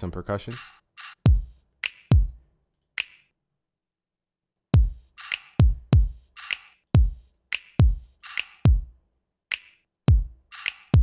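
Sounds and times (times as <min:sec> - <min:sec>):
electronic kick drums: 0:01.3 - 0:02.4, 0:04.8 - 0:06.4, 0:07.0 - 0:08.9, 0:10.1 - 0:11.0.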